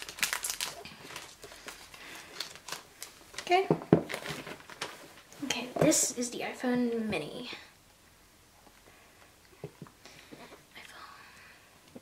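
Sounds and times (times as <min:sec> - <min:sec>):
plastic film crinkling: 0:00.0 - 0:05.4.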